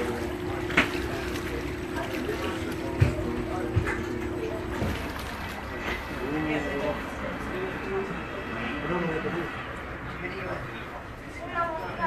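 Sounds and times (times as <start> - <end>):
ferry engine droning: 0.0 - 12.0.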